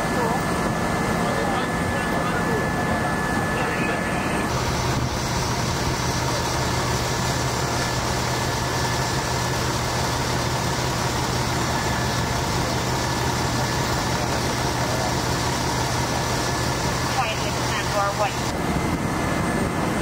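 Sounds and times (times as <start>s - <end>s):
vehicle engine idling: 4.4s - 18.6s.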